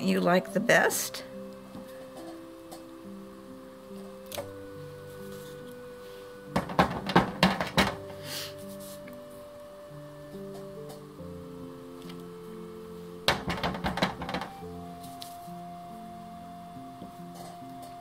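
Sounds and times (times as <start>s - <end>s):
soft background music: 0.0s - 18.0s.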